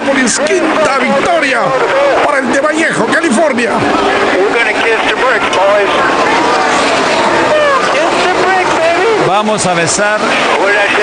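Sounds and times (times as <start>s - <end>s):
stock car engines running: 0.0s - 11.0s
excited voices shouting: 3.8s - 9.5s.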